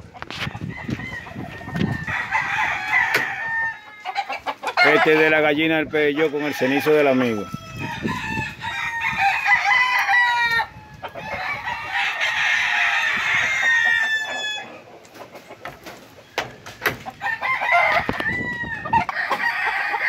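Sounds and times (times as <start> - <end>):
roosters crowing: 0.0 - 20.0.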